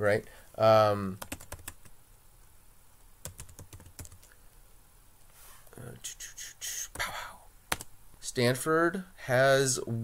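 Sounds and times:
typing on computer keyboard: 0:01.2 - 0:01.9, 0:03.2 - 0:04.3.

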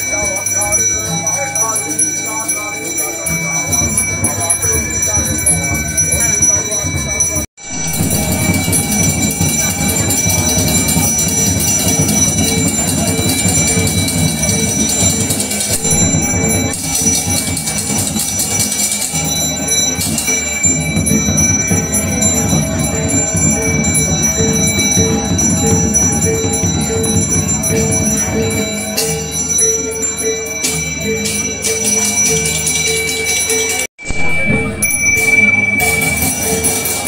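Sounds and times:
brass hand bell ringing: 0:00.0 - 0:37.0.

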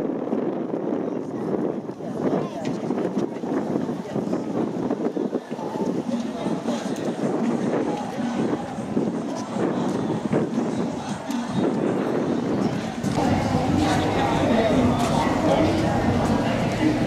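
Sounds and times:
indistinct chatter: 0:00.0 - 0:17.0
wind on microphone: 0:00.0 - 0:17.0.

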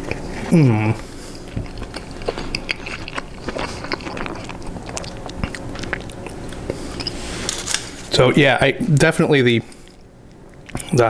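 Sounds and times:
person chewing food: 0:00.0 - 0:08.0, 0:09.7 - 0:11.0.

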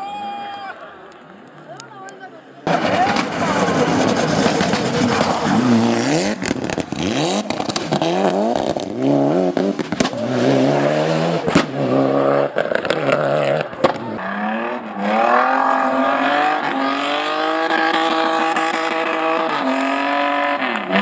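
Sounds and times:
engine cracks: 0:02.7 - 0:09.0
race car engine at high revs: 0:02.7 - 0:21.0.

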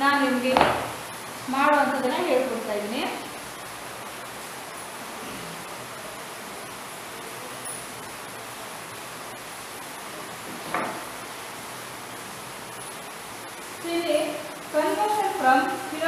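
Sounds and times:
room noise hiss: 0:00.0 - 0:16.0.

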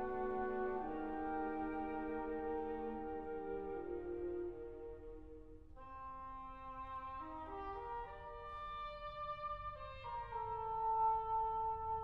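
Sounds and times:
orchestral music with brass: 0:00.0 - 0:12.0.

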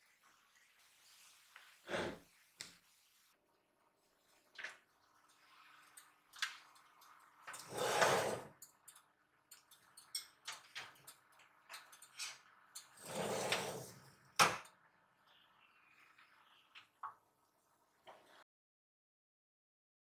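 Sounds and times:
oven rack sliding scrape: 0:07.6 - 0:08.6, 0:13.0 - 0:14.1.

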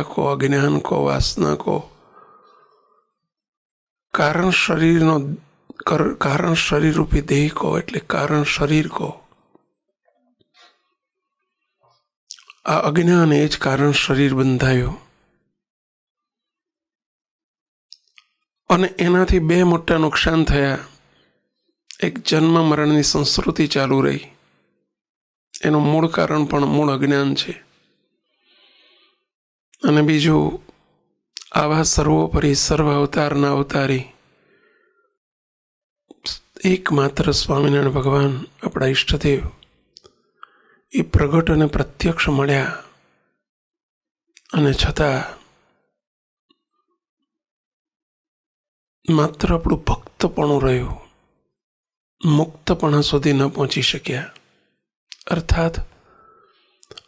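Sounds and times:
man speaking into a microphone: 0:00.0 - 0:02.0, 0:04.2 - 0:09.3, 0:12.3 - 0:15.1, 0:18.7 - 0:21.0, 0:21.9 - 0:24.4, 0:25.6 - 0:27.6, 0:29.8 - 0:30.7, 0:31.4 - 0:34.2, 0:36.2 - 0:39.6, 0:40.9 - 0:42.9, 0:44.4 - 0:45.4, 0:49.1 - 0:51.1, 0:52.2 - 0:54.4, 0:55.2 - 0:56.0.

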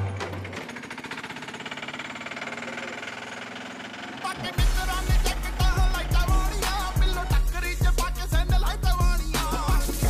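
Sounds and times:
small engine chugging: 0:00.0 - 0:09.8.

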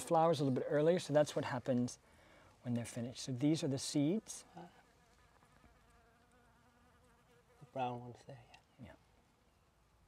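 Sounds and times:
bee buzzing in flight: 0:04.6 - 0:07.9.

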